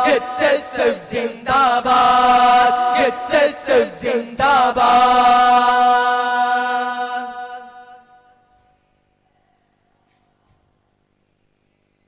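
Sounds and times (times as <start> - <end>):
voices singing a song: 0.0 - 8.4.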